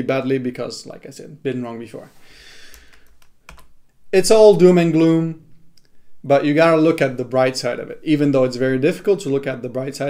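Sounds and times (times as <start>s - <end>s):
soft rustling hiss: 0.0s - 10.0s
computer keys clicking: 2.7s - 3.7s.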